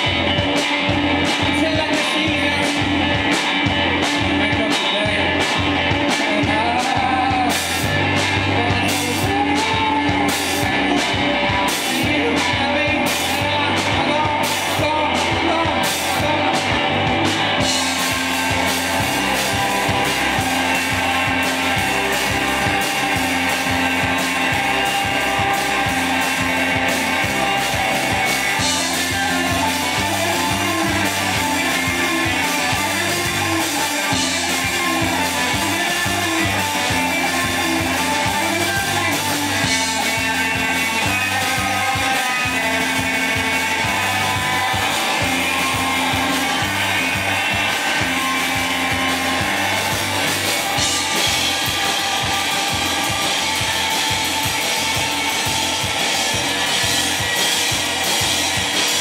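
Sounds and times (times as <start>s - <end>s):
drum kit beat: 0.0s - 59.0s
electric guitars: 0.0s - 59.0s.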